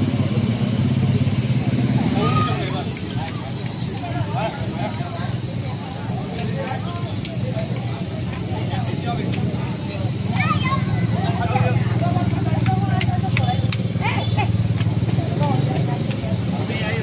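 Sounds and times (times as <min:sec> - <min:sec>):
crowd talking: 0:00.0 - 0:17.0.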